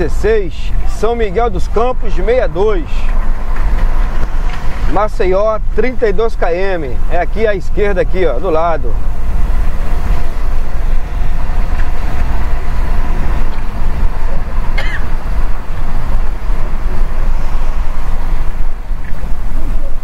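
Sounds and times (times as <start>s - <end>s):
engine and road rumble: 0.0s - 20.0s
tyres hissing on wet road: 0.0s - 20.0s.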